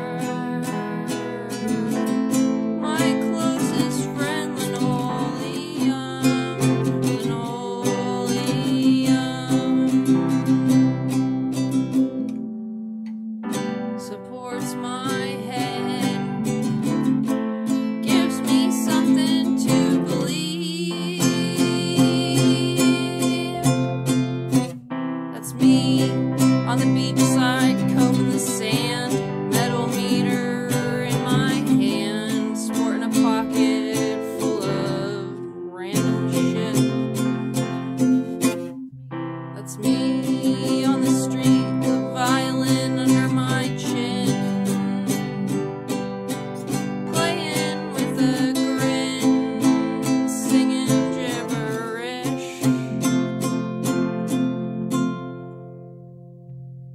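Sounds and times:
woman singing: 0:00.0 - 0:11.4, 0:13.9 - 0:24.7, 0:25.3 - 0:38.6, 0:39.5 - 0:55.2
strummed acoustic guitar: 0:00.0 - 0:56.9.

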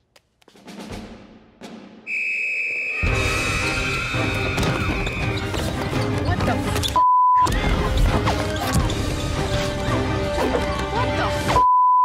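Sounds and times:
metal whistle blast: 0:02.0 - 0:04.7.

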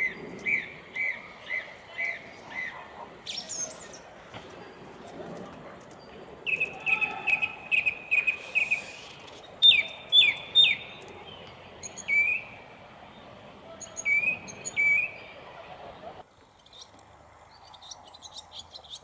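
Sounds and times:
small bird chirping: 0:06.0 - 0:12.6, 0:16.5 - 0:19.0.

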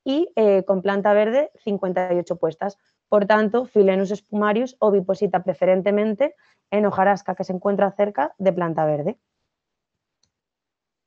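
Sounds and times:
woman speaking: 0:00.1 - 0:09.2.

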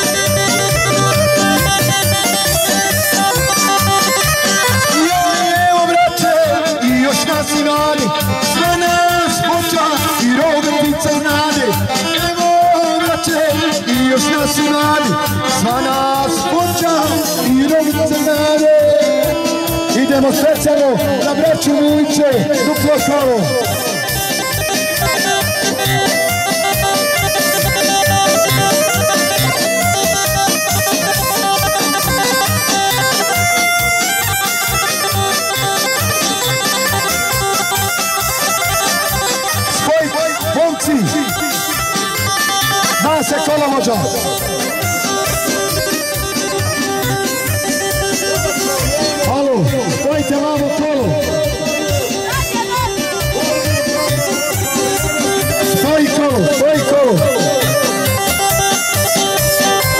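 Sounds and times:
folk dance music over loudspeakers: 0:00.0 - 0:59.9.

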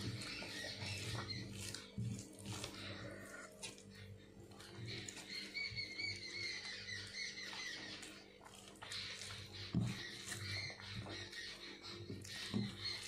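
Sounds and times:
bird chirping: 0:00.0 - 0:13.0.

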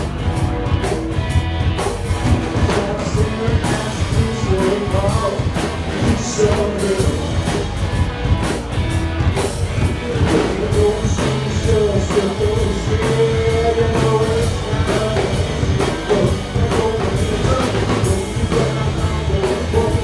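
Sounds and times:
drum kit beat: 0:00.0 - 0:20.0
electric guitar: 0:00.0 - 0:20.0
upright double bass: 0:00.0 - 0:20.0.

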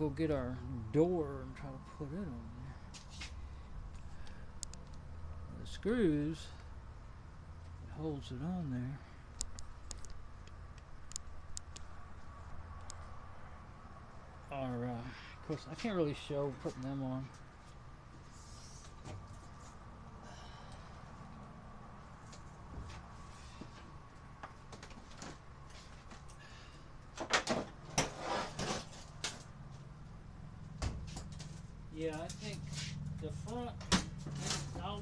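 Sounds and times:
knocks and rattles of dryer parts: 0:27.1 - 0:28.2, 0:33.8 - 0:35.0.

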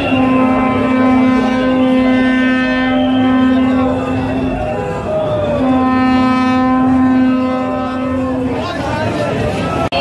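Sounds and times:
crowd shouting and chatter: 0:00.0 - 0:10.0
horn long steady note: 0:00.0 - 0:10.0.

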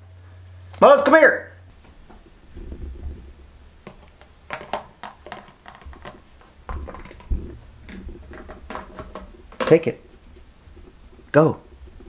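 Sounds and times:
soft low thumps: 0:01.7 - 0:04.5, 0:06.2 - 0:12.0.

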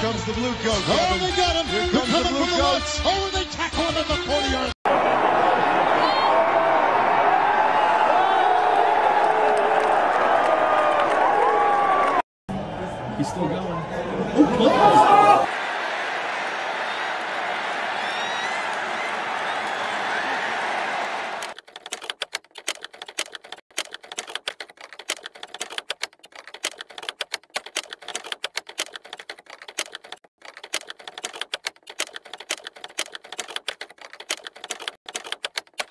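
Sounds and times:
stadium crowd noise: 0:04.9 - 0:21.6
rapid sharp clicks: 0:21.4 - 0:35.9.

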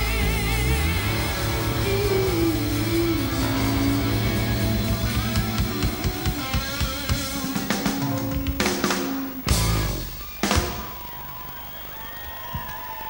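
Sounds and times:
rock band playing: 0:00.0 - 0:11.0
drums: 0:00.0 - 0:11.4.

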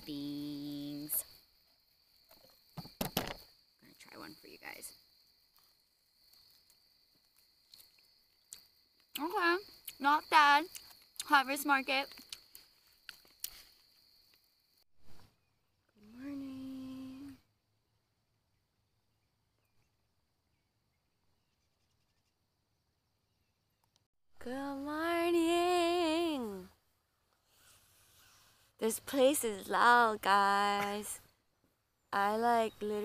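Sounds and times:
crickets chirping: 0:00.0 - 0:24.0, 0:24.6 - 0:33.0.

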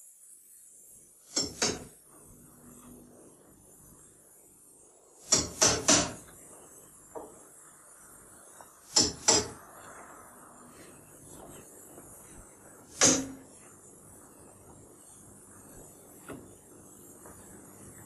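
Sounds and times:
hammer driving nails into wood: 0:01.3 - 0:01.9, 0:05.3 - 0:06.2, 0:08.9 - 0:09.6, 0:12.9 - 0:13.4.

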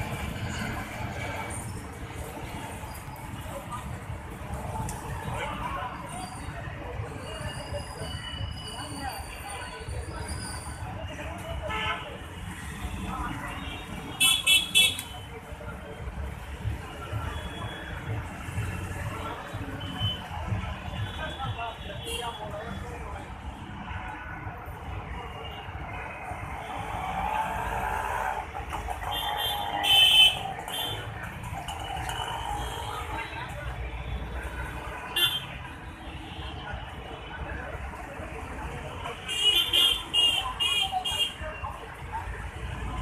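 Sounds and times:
faint voices: 0:00.0 - 0:43.0
street traffic rumble: 0:00.0 - 0:43.0.

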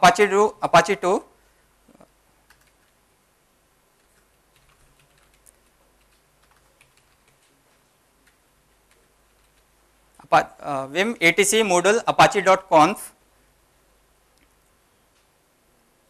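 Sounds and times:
computer keyboard typing: 0:02.4 - 0:03.0, 0:04.0 - 0:07.6, 0:08.2 - 0:09.7.

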